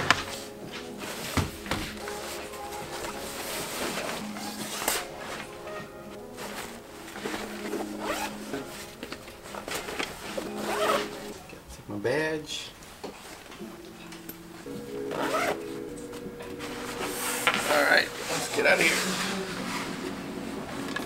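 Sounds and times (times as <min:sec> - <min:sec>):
background music: 0:00.0 - 0:21.0
backpack zipper being pulled: 0:07.7 - 0:08.4, 0:10.6 - 0:11.2.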